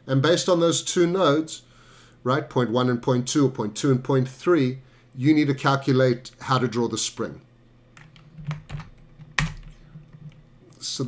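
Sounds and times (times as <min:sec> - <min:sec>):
computer keyboard keystrokes: 0:08.0 - 0:09.8.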